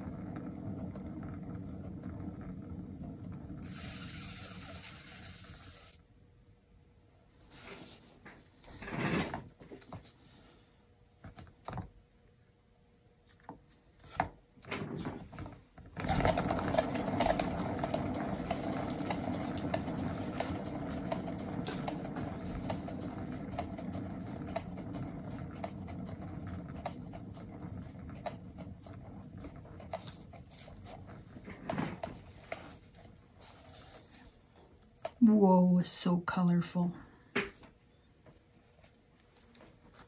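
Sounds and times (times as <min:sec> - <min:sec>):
turntable whirring: 0:00.0 - 0:06.0, 0:14.7 - 0:35.2.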